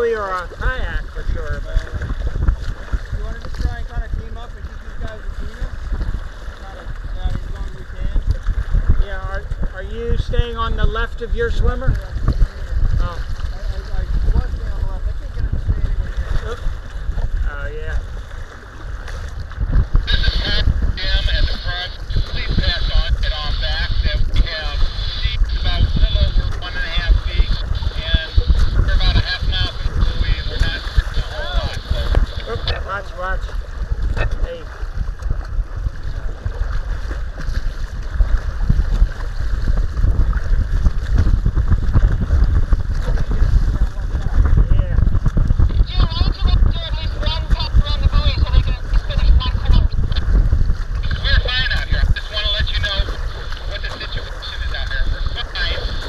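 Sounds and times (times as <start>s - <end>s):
waves slapping against hull: 0.0s - 56.0s
wind buffeting microphone: 0.0s - 56.0s.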